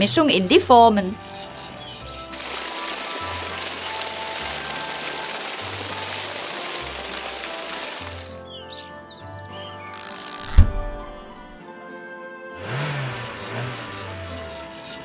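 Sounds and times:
background music: 0.0 - 15.0
wet cement pouring: 1.2 - 8.4, 13.2 - 15.0.

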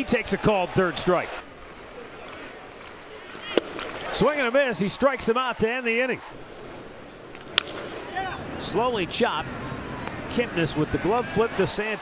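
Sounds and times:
crowd murmur: 0.6 - 4.2
ball smacking into mitt: 3.6 - 4.0, 7.4 - 7.9.

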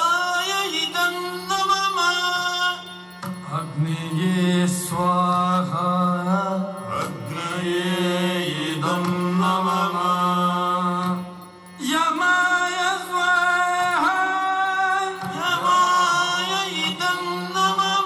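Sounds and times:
person singing chant-like: 0.0 - 18.0
sharp percussion strokes: 0.0 - 18.0.

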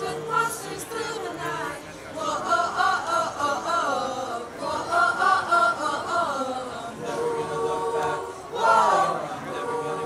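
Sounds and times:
choir singing a cappella: 0.0 - 10.0.

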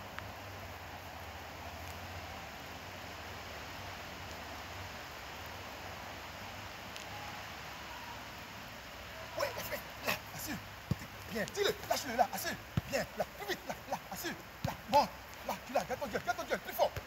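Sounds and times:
even hiss: 0.0 - 17.0.

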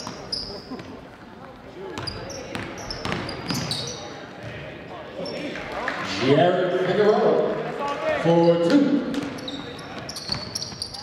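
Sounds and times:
sneakers squeaking on court: 0.0 - 1.0, 1.9 - 4.6, 8.4 - 11.0
basketball bouncing on hardwood: 2.0 - 3.6.

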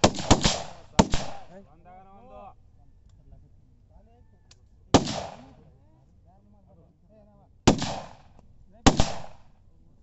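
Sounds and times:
loud gunshot with echo: 0.0 - 1.5, 7.7 - 8.3, 8.9 - 9.4.

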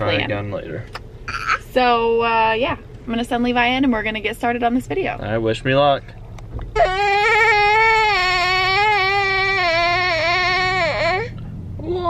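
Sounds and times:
high wailing cry: 6.8 - 11.4.

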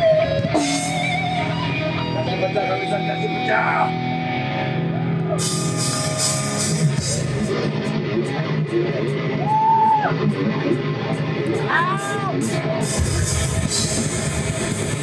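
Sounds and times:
live rock band playing: 0.0 - 15.0
voice wailing: 11.6 - 12.5.

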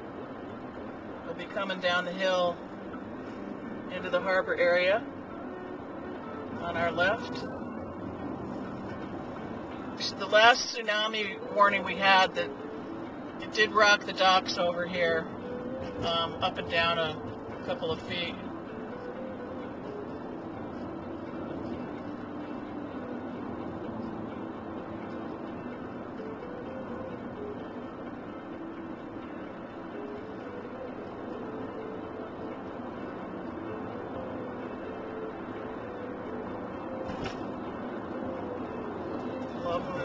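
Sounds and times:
car road and engine noise: 0.0 - 40.0.

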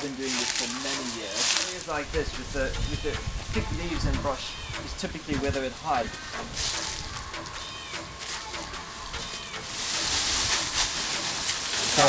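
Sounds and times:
footsteps on dry leaves: 0.0 - 12.0
loud rustle of leaves: 0.0 - 12.0.

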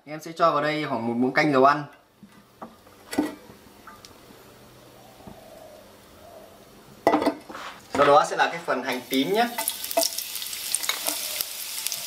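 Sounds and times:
kitchenware clacking and clinking: 7.0 - 8.2
kitchenware clattering: 7.0 - 8.2.

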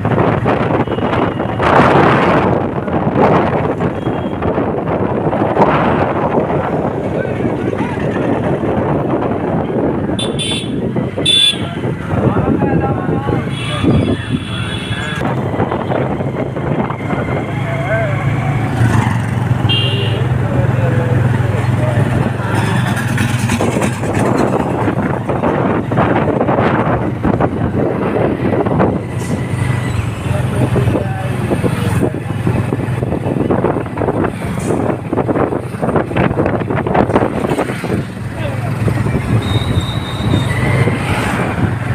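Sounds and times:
vehicle horn toots: 10.2 - 11.7, 19.7 - 20.3, 39.4 - 40.6.

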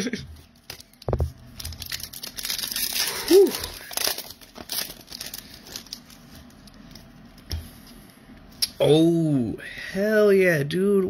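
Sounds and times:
foil wrapper crinkling and tearing: 0.6 - 7.1.

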